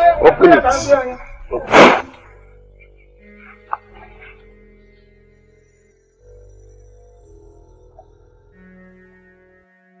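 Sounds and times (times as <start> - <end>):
low drone film score: 0.0 - 10.0.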